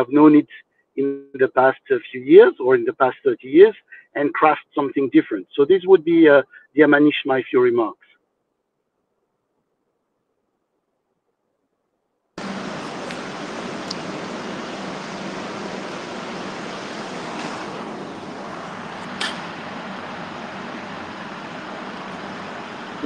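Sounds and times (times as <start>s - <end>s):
faint hum: 12.4s - 23.0s
rushing background noise: 12.4s - 23.0s
short click: 19.1s - 19.4s.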